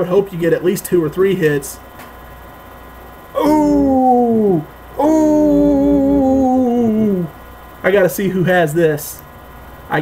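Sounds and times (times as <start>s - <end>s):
man humming long notes: 3.4s - 7.3s.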